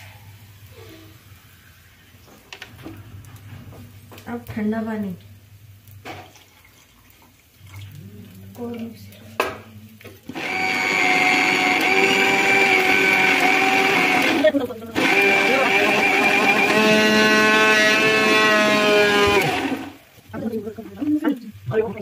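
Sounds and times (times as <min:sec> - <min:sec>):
mixer grinder motor whine: 0:10.3 - 0:20.0.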